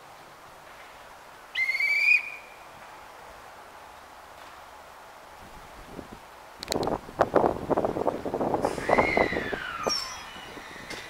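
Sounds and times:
hand whistle blast: 1.6s - 2.4s.

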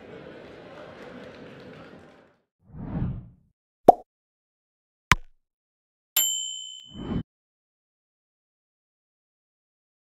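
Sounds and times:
bright bell ding: 6.2s - 7.2s.

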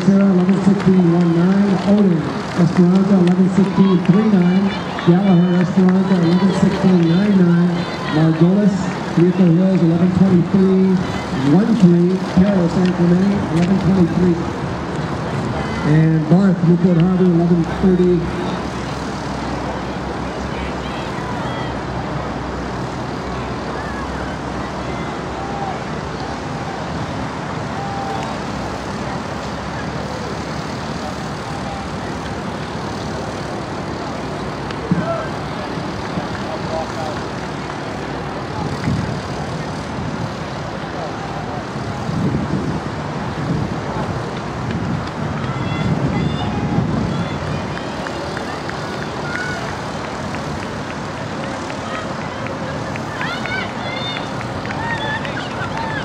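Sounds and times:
faint distant voices: 0.0s - 56.0s.

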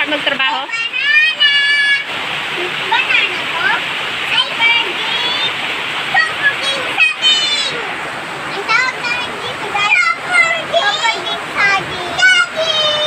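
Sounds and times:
children's voices: 0.0s - 13.0s
heavy rain pouring: 0.0s - 13.0s.

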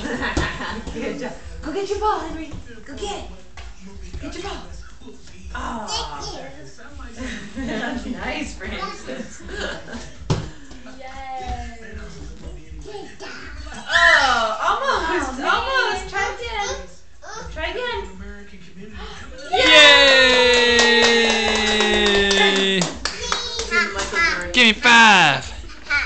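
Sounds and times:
person cheering: 19.5s - 23.0s, 24.6s - 25.4s
hands clapping quickly: 20.0s - 24.2s
drawn-out voice: 24.6s - 25.5s.

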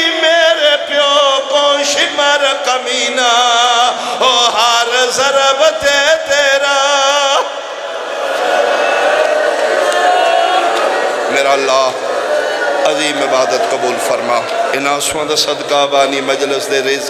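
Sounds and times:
man chanting through a microphone: 0.0s - 7.7s.

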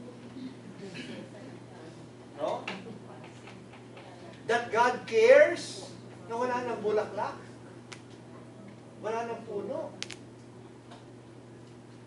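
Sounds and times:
steady low hum: 0.0s - 12.0s
sharp click: 10.0s - 10.2s.

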